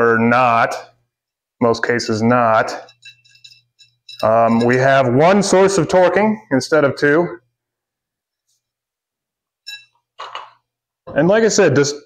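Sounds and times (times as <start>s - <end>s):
metallic clink with ring: 2.0s - 5.0s, 9.6s - 10.0s.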